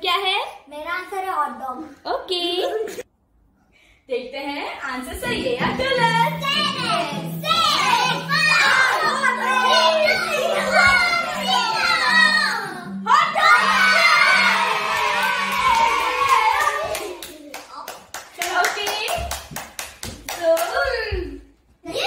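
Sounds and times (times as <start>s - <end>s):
background music: 5.1s - 18.4s
long shout: 10.8s - 17.1s
hands clapping: 15.0s - 20.9s.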